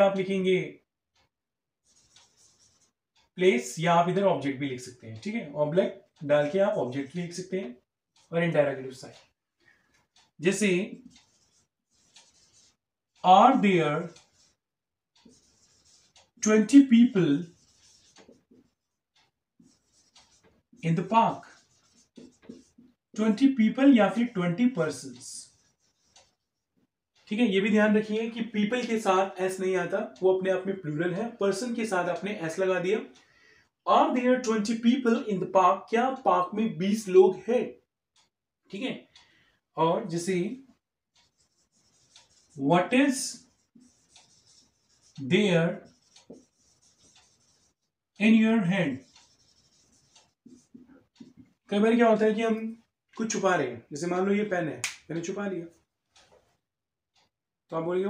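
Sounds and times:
marker pen scratching whiteboard: 1.8s - 4.2s, 10.2s - 26.9s, 30.6s - 33.0s, 40.0s - 51.5s.

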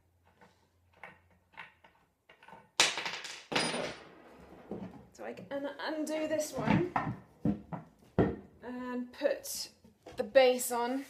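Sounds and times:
wooden parts clicking and knocking: 0.1s - 8.5s.

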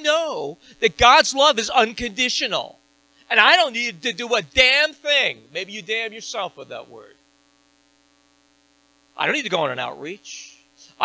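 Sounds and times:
man speaking: 0.0s - 7.1s, 9.2s - 11.0s
faint electrical hum: 0.0s - 11.0s.

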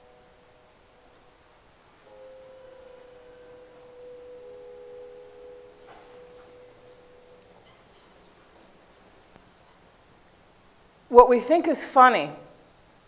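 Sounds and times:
sustained electronic tones: 2.0s - 8.4s.

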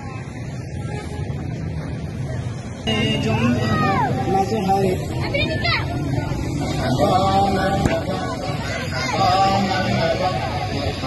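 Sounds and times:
faint voices: 0.0s - 11.0s
traffic rumble: 0.0s - 11.0s
loud shouting voices: 2.9s - 11.0s.

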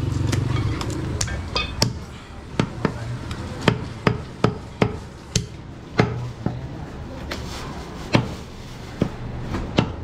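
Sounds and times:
knife chopping meat on wooden block: 3.6s - 6.2s, 8.1s - 8.4s, 9.0s - 10.0s.

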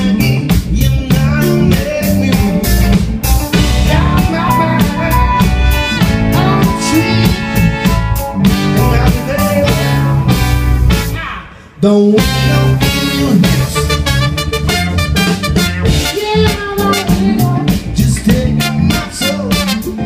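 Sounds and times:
drum kit beat: 0.0s - 11.3s, 12.1s - 20.0s
electric guitar: 0.0s - 20.0s
trombone: 1.2s - 11.3s, 12.2s - 20.0s
trumpet: 3.6s - 11.5s, 12.2s - 20.0s.

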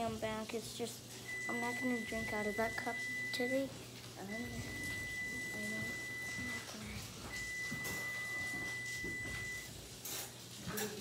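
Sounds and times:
high-pitched beep tone: 1.3s - 3.6s, 7.3s - 9.7s.

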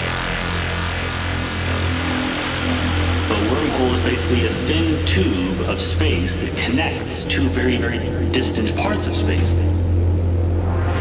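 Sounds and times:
low synth drone: 0.0s - 11.0s
noisy synth texture: 0.0s - 11.0s
sampled spoken voice: 3.3s - 9.9s.

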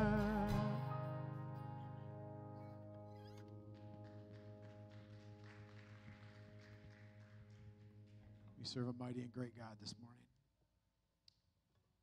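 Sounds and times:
man's voice: 8.6s - 10.3s.

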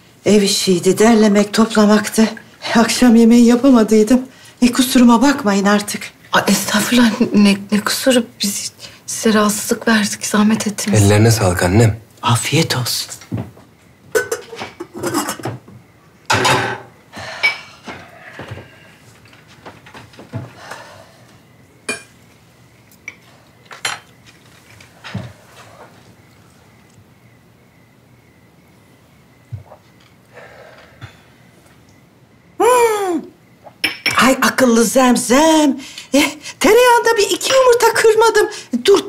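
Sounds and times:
cutlery clinking on plates: 14.2s - 15.6s, 21.9s - 22.2s, 23.1s - 24.1s, 33.8s - 34.3s.

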